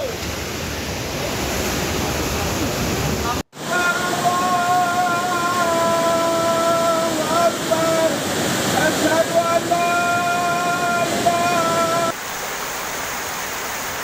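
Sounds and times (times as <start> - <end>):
floodwater rushing: 0.0 - 14.0
long held pitched tone: 3.6 - 8.2, 8.8 - 12.1.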